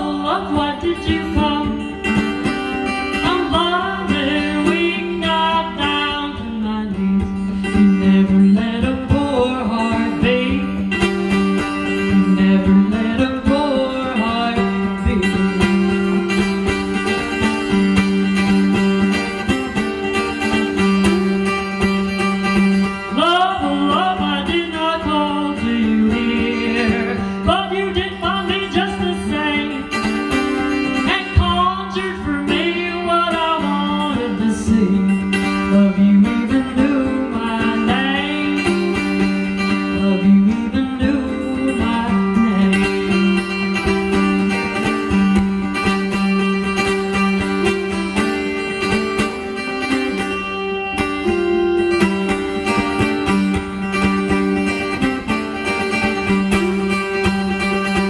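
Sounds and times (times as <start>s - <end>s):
woman singing: 0.0s - 2.3s, 2.9s - 11.0s, 11.7s - 16.3s, 23.0s - 43.6s
strummed acoustic guitar: 0.0s - 58.0s.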